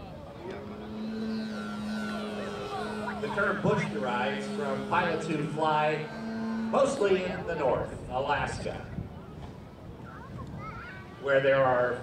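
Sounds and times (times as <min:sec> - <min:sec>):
model plane motor drone: 0:00.0 - 0:12.0.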